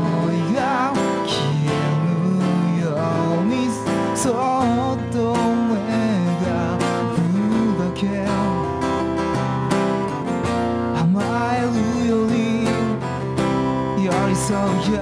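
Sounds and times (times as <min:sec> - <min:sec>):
man singing pop ballad: 0:00.0 - 0:09.4, 0:10.9 - 0:15.0
acoustic guitar strumming: 0:00.0 - 0:15.0.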